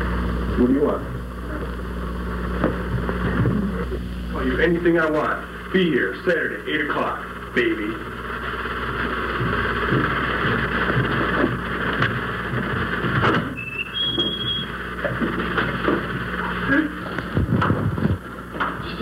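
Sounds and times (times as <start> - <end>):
low electrical hum and hiss: 0.0 - 19.0.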